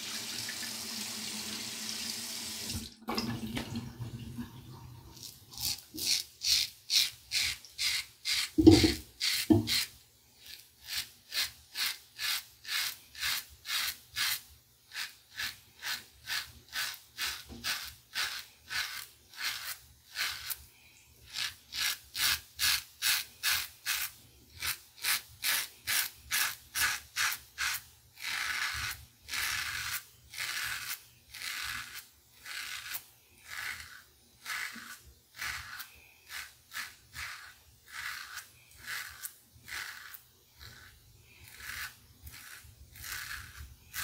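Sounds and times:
razor rasping through stubble: 5.1 - 44.0.

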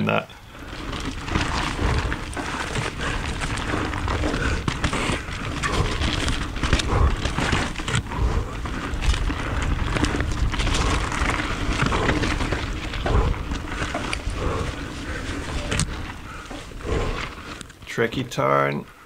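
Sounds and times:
low microphone rumble: 0.4 - 17.7
bike tyres rattling over rocks: 0.4 - 18.7.

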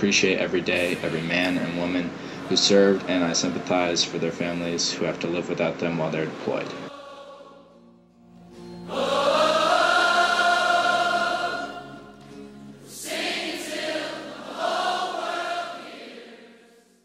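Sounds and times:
choir singing long held notes: 2.3 - 4.7, 6.7 - 8.0, 8.8 - 17.0.

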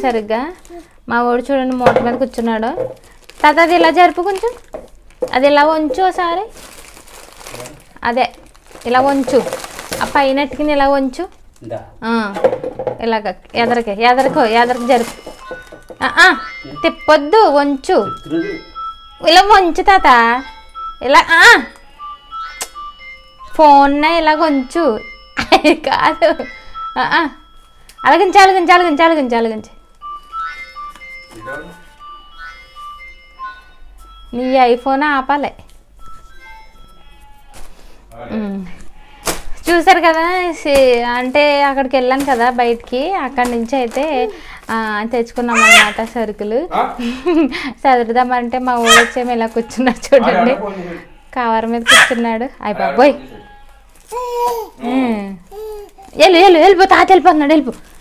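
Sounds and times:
plastic bag crinkling and rustling: 0.0 - 1.0, 1.6 - 11.7, 13.4 - 16.1, 39.2 - 46.4, 48.0 - 50.2, 53.7 - 54.8, 55.4 - 58.0
tinny electronic beeping tune: 14.3 - 37.6.

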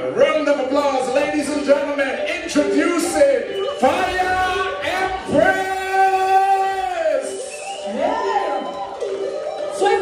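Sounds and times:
soca music with singing: 1.2 - 10.0.

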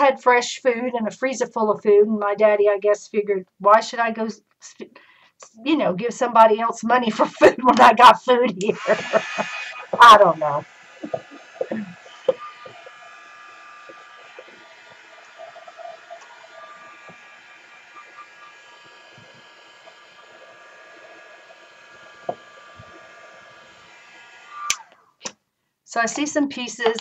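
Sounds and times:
heat gun blowing: 8.6 - 25.3
heat gun switch click: 24.6 - 25.4.

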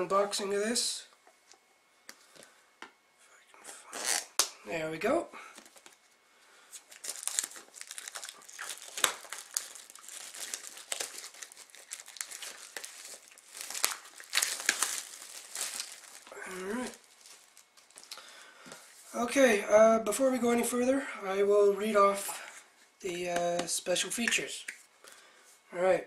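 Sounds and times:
plastic shrink wrap crinkling and tearing: 3.8 - 4.6, 5.6 - 18.5.

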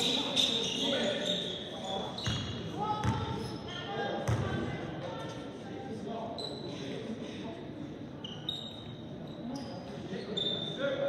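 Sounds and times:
sneaker squeaks: 0.0 - 4.5, 6.3 - 6.9, 8.2 - 10.9
voices echoing in a hall: 0.0 - 11.0.

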